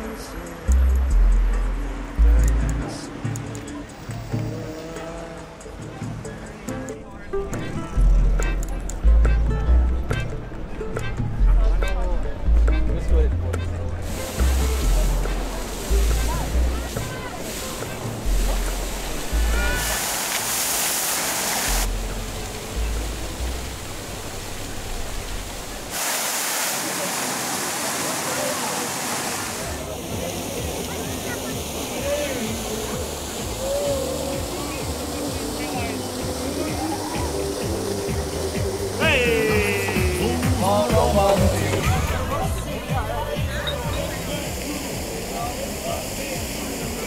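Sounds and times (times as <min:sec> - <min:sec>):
music with pulsing bass: 0:00.0 - 0:20.0, 0:21.7 - 0:25.9, 0:29.8 - 0:47.0
murmur of crowd: 0:00.0 - 0:20.1, 0:26.8 - 0:47.0
fountain jets hissing: 0:13.8 - 0:47.0.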